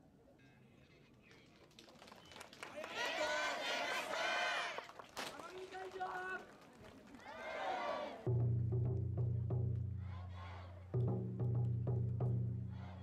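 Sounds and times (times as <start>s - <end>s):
cheer squad shouting calls: 2.8s - 4.8s, 7.2s - 8.2s, 10.0s - 10.8s.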